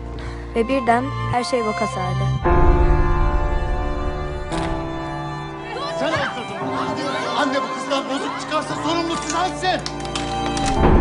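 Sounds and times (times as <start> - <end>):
sustained music: 0.0 - 11.0
voices chattering and calling out: 5.5 - 9.6.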